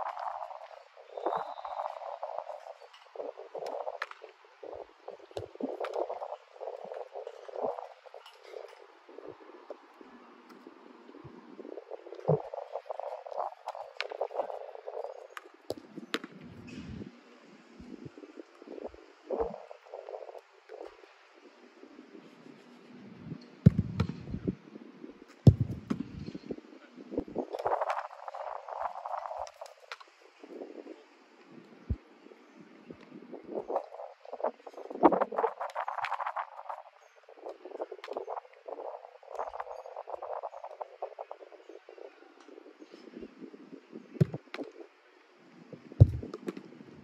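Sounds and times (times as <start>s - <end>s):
soccer ball kicks thudding: 23.7s - 24.4s, 25.5s - 26.3s, 46.0s - 46.6s.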